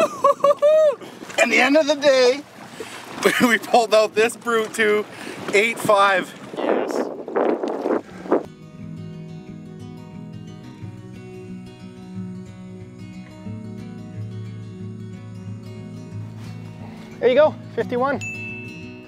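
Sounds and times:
sustained tone background music: 8.5 - 19.0.

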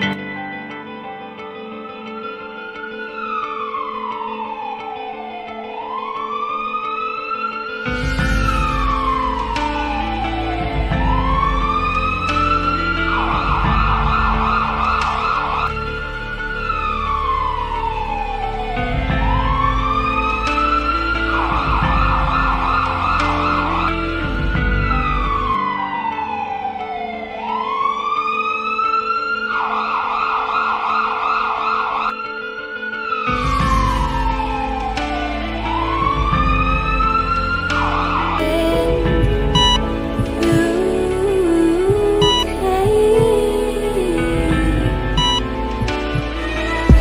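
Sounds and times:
siren wailing and yelping: 2.4 - 38.4, 39.4 - 40.6, 45.2 - 46.4
music with held notes: 32.1 - 47.0.

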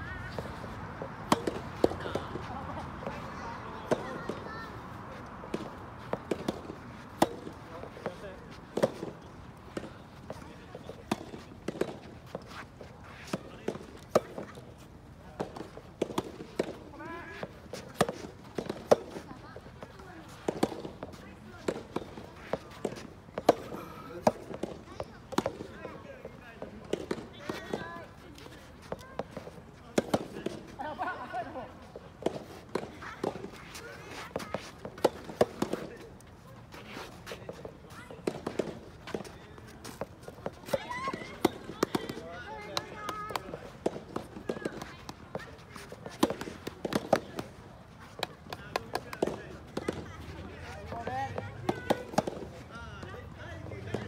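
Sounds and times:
rackets striking tennis balls: 0.2 - 52.6.

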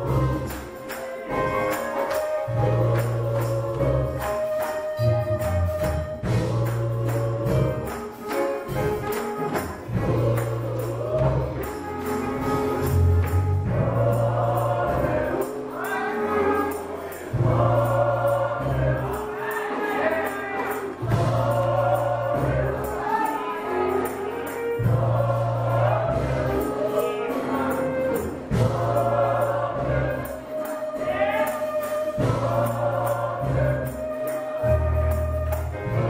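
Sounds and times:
gospel choir singing: 0.0 - 36.0
tambourine jingling: 0.0 - 36.0.

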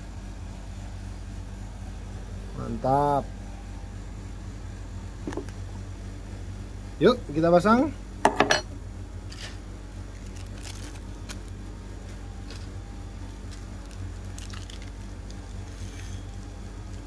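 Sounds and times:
steady low hum: 0.0 - 17.0
plastic packaging crinkly clicks: 10.1 - 11.6, 13.4 - 15.5.

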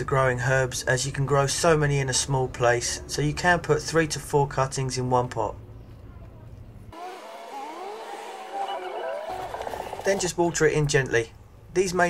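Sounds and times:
vehicle engine revving: 6.9 - 10.4.

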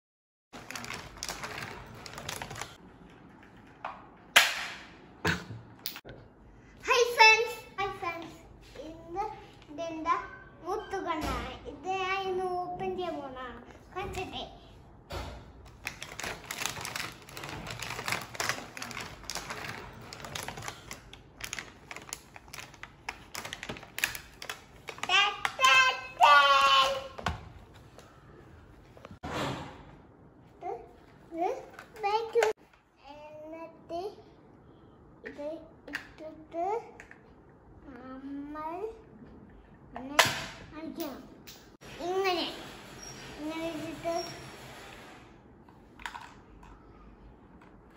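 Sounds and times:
plastic packaging crinkling: 0.6 - 2.8, 15.7 - 25.1.

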